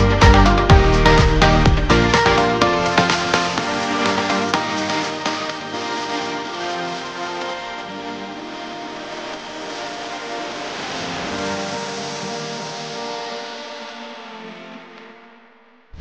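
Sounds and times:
background music with sustained notes: 0.0s - 16.0s.

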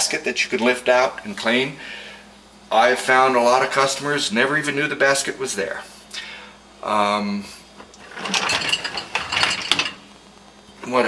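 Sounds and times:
plastic dishwasher parts rattling: 7.9s - 10.0s.

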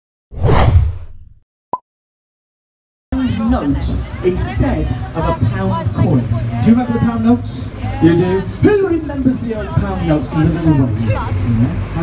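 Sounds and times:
whoosh with low rumble: 0.3s - 1.4s.

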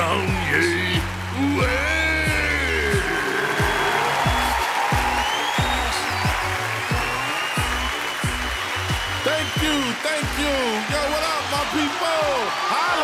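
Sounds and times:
deep kick drum: 0.0s - 7.1s
theme music with steady beat: 0.0s - 12.5s
audience applauding: 0.0s - 13.0s.

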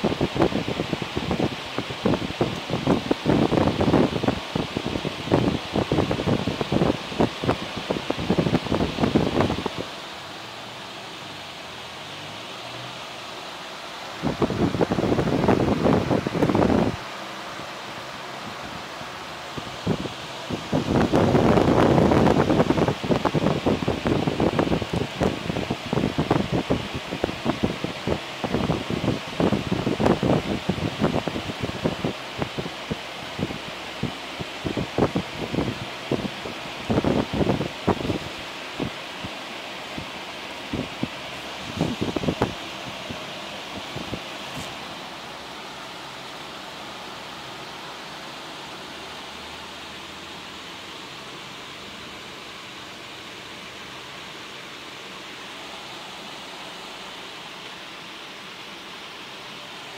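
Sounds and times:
fan-like hiss: 0.0s - 59.9s.

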